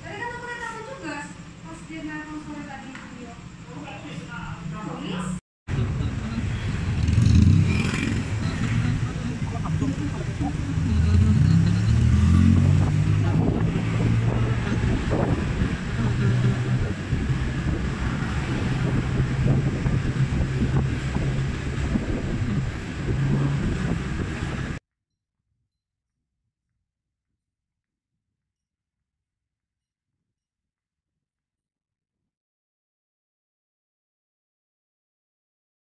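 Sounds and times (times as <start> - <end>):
vehicle engine driving slowly: 5.7 - 24.8.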